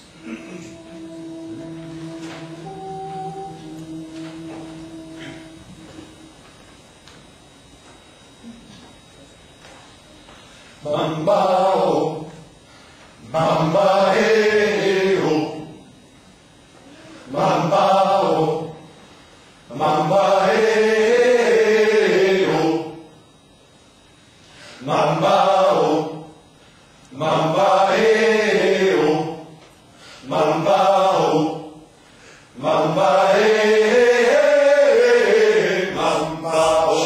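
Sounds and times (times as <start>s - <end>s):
male ensemble singing a cappella: 0.2s - 6.4s, 10.8s - 12.5s, 13.2s - 16.0s, 17.1s - 23.2s, 24.6s - 26.5s, 27.1s - 37.0s.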